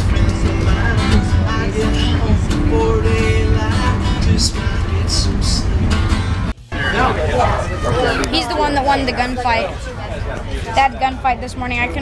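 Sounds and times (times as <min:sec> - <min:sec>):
acoustic guitar country tune: 0:00.0 - 0:12.0
train car rumble: 0:00.0 - 0:12.0.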